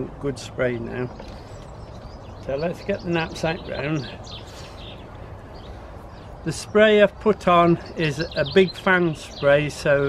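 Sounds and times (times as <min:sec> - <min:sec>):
low background noise: 0:00.0 - 0:10.0.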